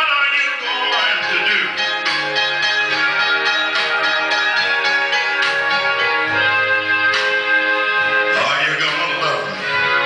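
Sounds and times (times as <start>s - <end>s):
blues music through radio speaker: 0.0s - 10.0s
picked ringing guitar notes: 0.6s - 10.0s.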